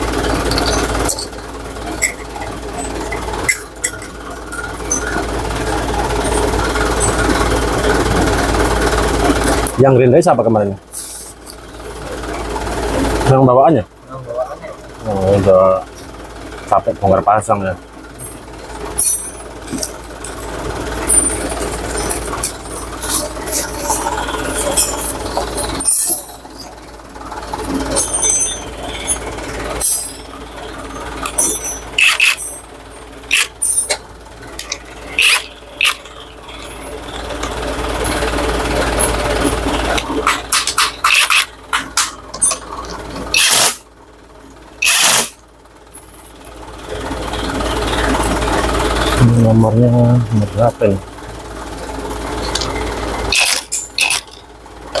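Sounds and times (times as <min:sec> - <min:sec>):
metal tools clinking: 0:00.4 - 0:05.3, 0:18.2 - 0:26.8, 0:27.6 - 0:34.0, 0:34.6 - 0:43.8, 0:44.8 - 0:46.4, 0:52.1 - 0:55.0.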